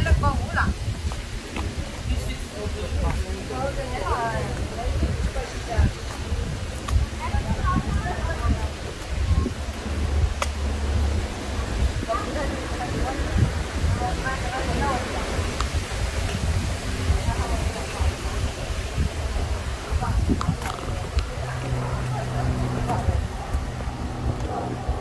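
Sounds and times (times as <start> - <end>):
people talking: 0.0 - 25.0
steady low rumble: 0.0 - 25.0.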